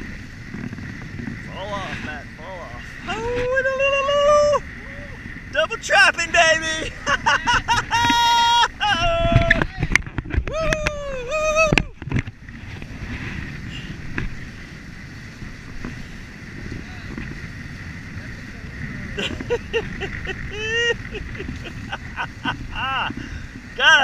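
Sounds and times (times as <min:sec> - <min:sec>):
water rushing along hulls: 0:00.0 - 0:24.0
wind on microphone: 0:00.0 - 0:24.0
man whooping and laughing: 0:03.0 - 0:05.2, 0:05.8 - 0:12.0, 0:19.1 - 0:24.0.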